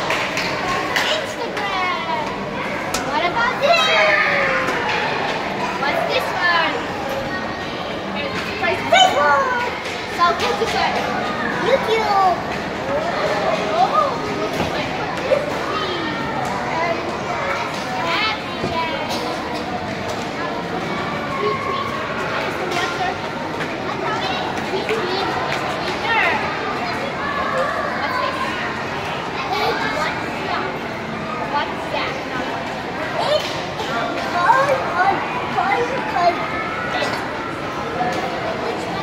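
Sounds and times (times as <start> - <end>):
children chattering and calling out: 0.0 - 39.0
indoor hall crowd hubbub: 0.0 - 39.0.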